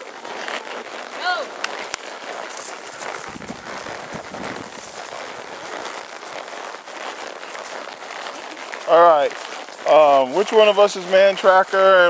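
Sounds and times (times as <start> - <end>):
leafy brush rustling and crackling: 0.0 - 12.0.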